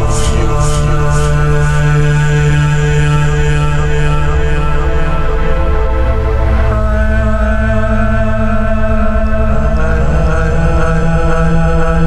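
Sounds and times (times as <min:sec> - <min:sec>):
droning synth chord: 0:00.0 - 0:12.0
low bass: 0:00.0 - 0:12.0.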